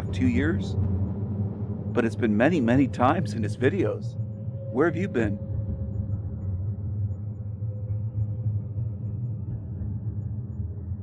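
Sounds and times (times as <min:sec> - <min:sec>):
low ambient drone: 0:00.0 - 0:11.0.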